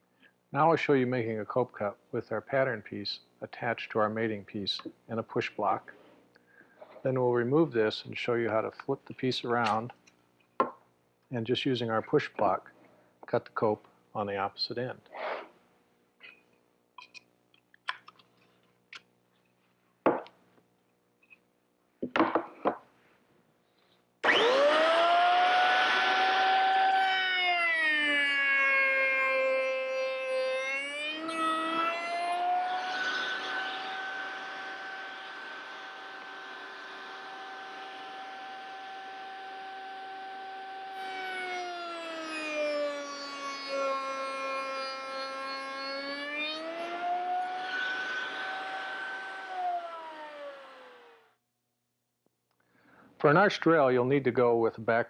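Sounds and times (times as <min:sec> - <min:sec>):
router whining: 0:24.2 - 0:51.4.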